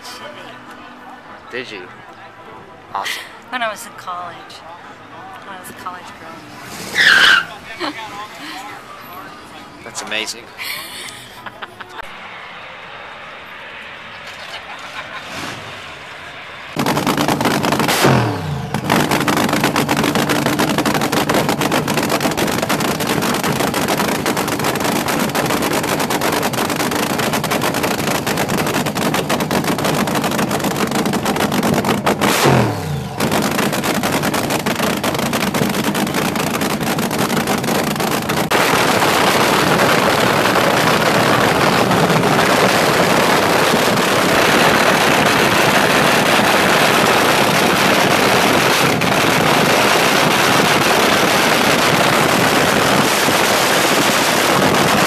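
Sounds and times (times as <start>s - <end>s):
dragster engine revving: 14.3s - 55.0s.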